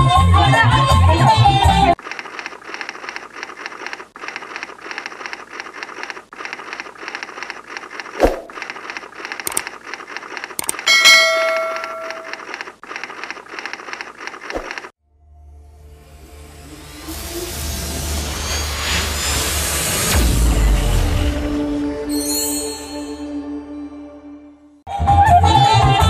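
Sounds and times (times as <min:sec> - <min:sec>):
rapid typewriter key clicking: 0:02.0 - 0:10.9
sharp clicks: 0:02.1 - 0:10.8
notification bell chiming: 0:10.8 - 0:12.4.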